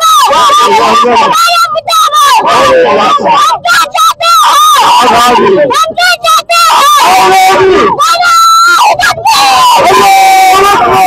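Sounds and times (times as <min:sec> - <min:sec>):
girl shouting into microphone: 0:00.0 - 0:11.0.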